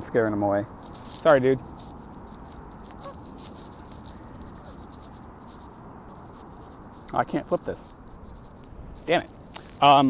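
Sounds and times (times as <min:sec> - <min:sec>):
footsteps on paved path: 0:00.0 - 0:10.0
outdoor background noise: 0:00.0 - 0:10.0
goose honk: 0:03.0 - 0:03.3.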